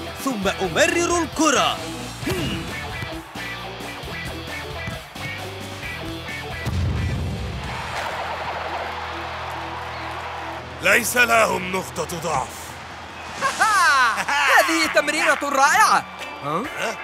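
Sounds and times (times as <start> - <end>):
crowd cheering: 0.8 - 17.0.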